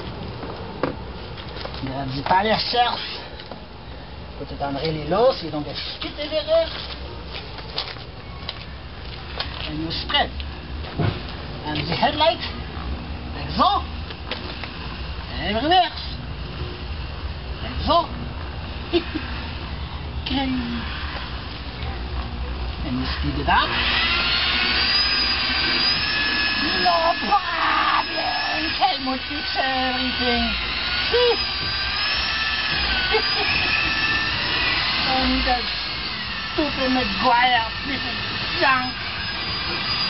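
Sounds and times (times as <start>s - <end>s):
footsteps on gravel: 6.7s - 9.7s
electric polisher motor whine: 14.1s - 15.6s, 16.6s - 40.0s.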